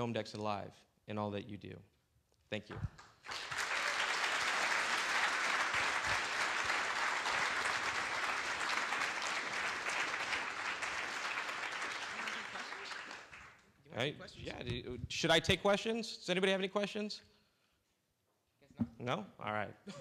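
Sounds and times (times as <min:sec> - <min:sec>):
audience applauding: 0:02.9 - 0:13.6.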